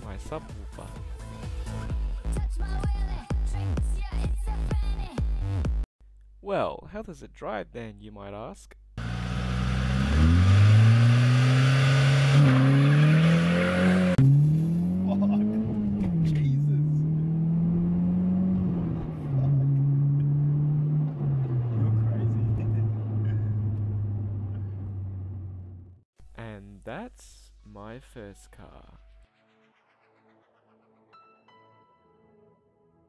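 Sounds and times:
car engine revving: 0:09.0 - 0:25.9.

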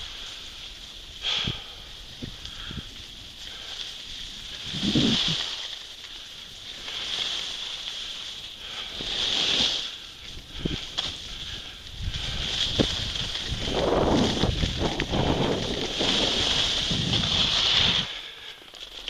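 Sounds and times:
wind rumbling on microphone: 0:00.0 - 0:05.8, 0:08.3 - 0:18.3
skis hissing on snow: 0:00.0 - 0:19.0.

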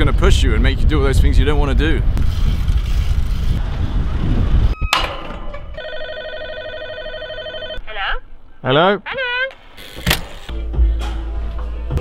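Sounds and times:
intercom call tone ringing: 0:05.8 - 0:07.8.

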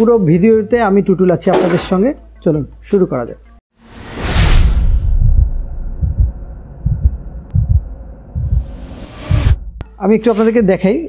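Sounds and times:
whoosh: 0:03.9 - 0:06.2
low hum: 0:04.9 - 0:09.8
deep bass thumps: 0:05.1 - 0:08.7.

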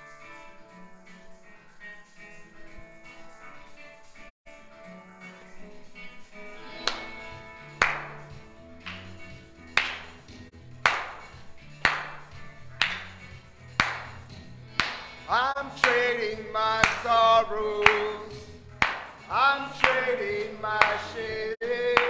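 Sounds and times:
sharp clap-like hit: 0:06.8 - 0:16.1, 0:16.8 - 0:17.2, 0:18.8 - 0:20.1
worship song through television: 0:14.7 - 0:22.0
person singing: 0:15.2 - 0:18.7, 0:19.3 - 0:22.0.

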